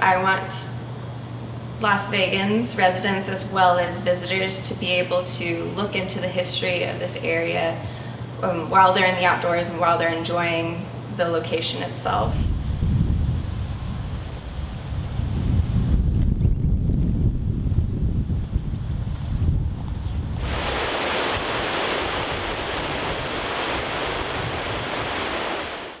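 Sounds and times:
steady rushing hiss: 12.2s - 16.0s, 20.3s - 26.0s
wind buffeting microphone: 12.2s - 25.9s.

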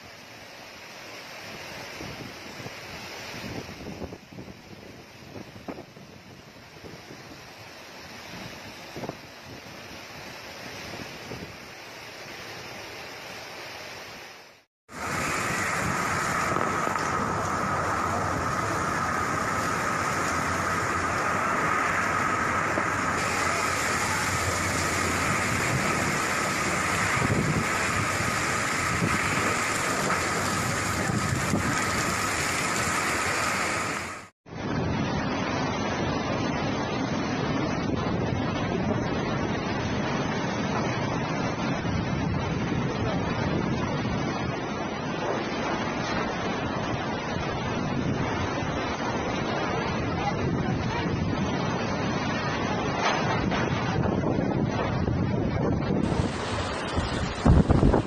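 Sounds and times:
strong wind: 1.4s - 12.8s, 14.9s - 58.0s
heavy rain: 6.3s - 58.0s
floodwater rushing: 6.8s - 58.0s.

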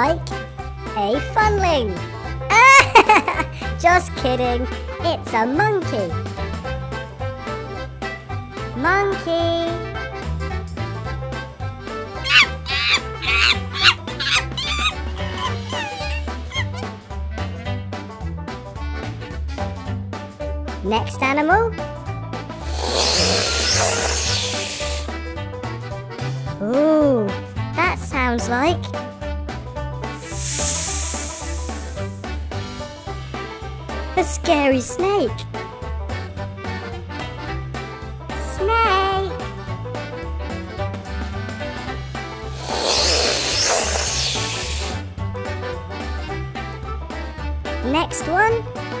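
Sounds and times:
background music with bass line: 0.0s - 49.0s
snake hissing: 12.3s - 16.8s, 22.6s - 25.2s, 30.2s - 32.4s, 42.4s - 45.1s.

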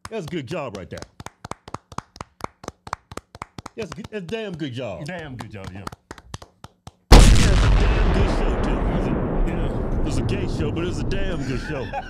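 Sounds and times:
hands clapping: 0.0s - 7.1s.

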